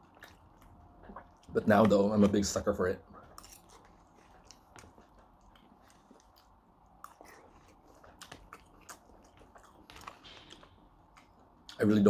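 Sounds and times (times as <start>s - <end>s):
chewing food: 0.0s - 12.0s.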